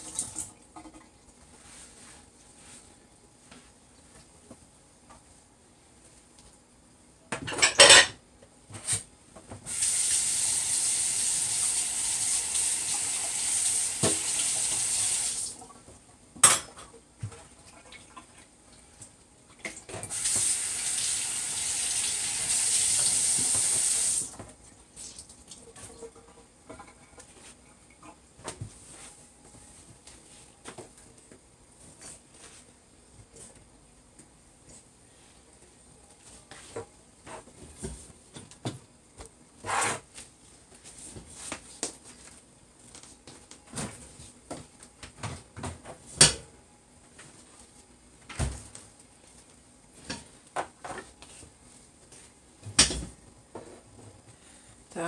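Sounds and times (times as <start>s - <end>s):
dishes clinking: 7.4s - 8.2s.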